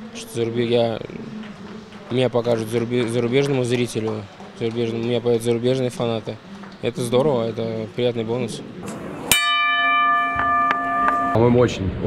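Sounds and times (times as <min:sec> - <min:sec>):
boxing ring bell ringing: 0:09.3 - 0:11.5.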